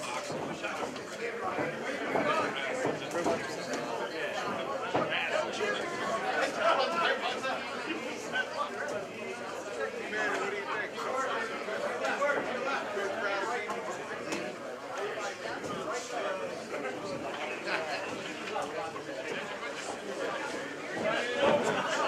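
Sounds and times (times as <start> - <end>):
crowd chattering and calling out: 0.0 - 22.0.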